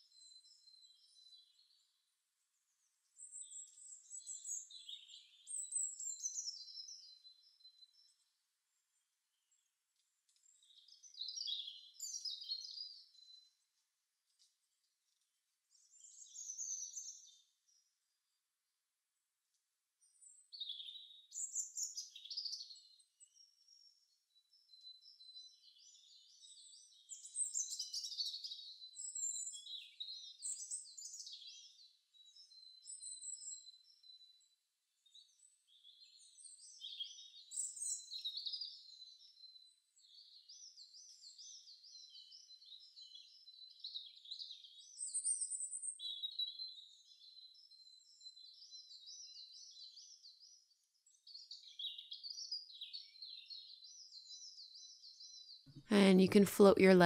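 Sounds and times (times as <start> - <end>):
birds singing: 2.6 - 8.2, 9.3 - 13.6, 15.7 - 17.8, 20.0 - 55.8.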